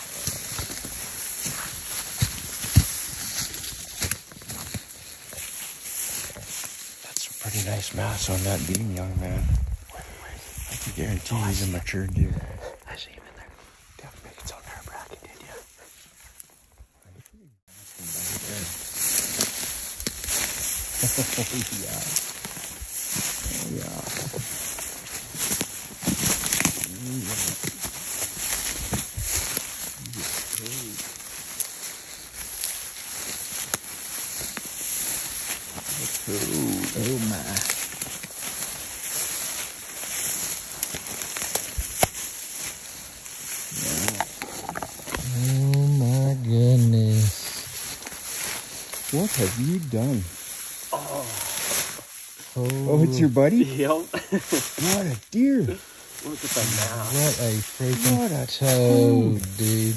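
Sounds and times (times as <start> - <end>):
footsteps through dry grass: 0.0 - 12.7, 13.4 - 59.9
steady high hiss: 17.8 - 44.3, 46.0 - 59.9
twigs snapping: 18.2 - 45.8
low voices: 21.0 - 22.2, 23.4 - 24.5, 26.7 - 27.6, 30.0 - 31.1, 35.9 - 37.7, 43.7 - 47.6, 50.9 - 59.9.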